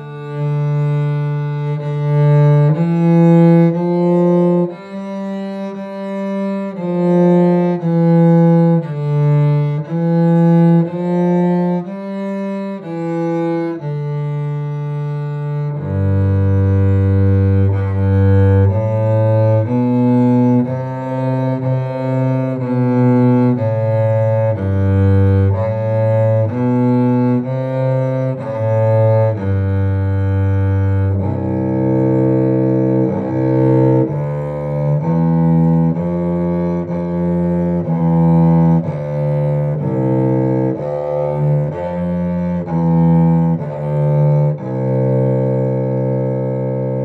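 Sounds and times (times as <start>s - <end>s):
bowed cello: 0.0s - 47.0s.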